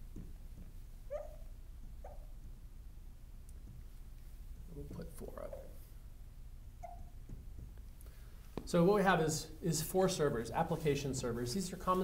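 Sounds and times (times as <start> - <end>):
faint low hum: 0.0 - 12.0
marker squeaking on glass: 1.1 - 2.4, 6.8 - 7.2.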